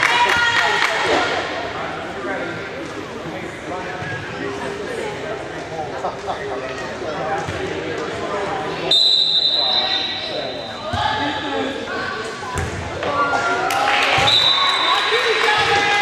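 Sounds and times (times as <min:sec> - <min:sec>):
voices calling and talking: 0:00.0 - 0:16.0
referee's whistle blasts: 0:08.9 - 0:10.8, 0:14.2 - 0:14.9.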